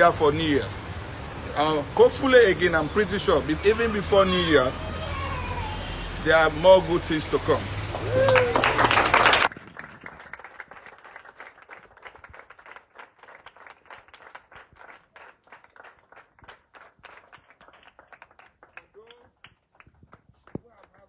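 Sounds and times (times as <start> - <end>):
children clapping: 7.8 - 21.0
loud cheer: 7.9 - 9.5.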